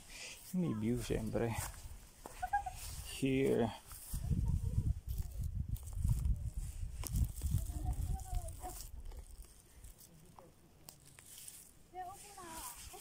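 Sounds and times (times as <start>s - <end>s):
low rumbling microphone noise: 4.1s - 9.9s.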